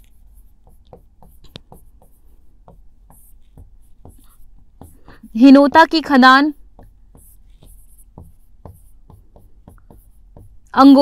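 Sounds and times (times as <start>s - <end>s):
pen scratching on a board: 0.0s - 11.0s.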